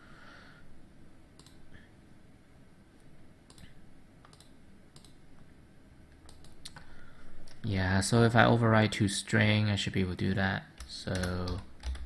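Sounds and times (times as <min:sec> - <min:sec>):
mouse and keyboard clicks: 0:03.5 - 0:05.2.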